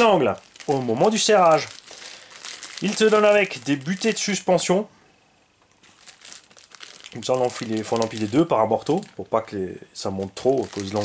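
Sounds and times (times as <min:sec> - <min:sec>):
plastic bag crinkling: 0:00.0 - 0:04.6, 0:05.8 - 0:09.2, 0:10.2 - 0:11.0.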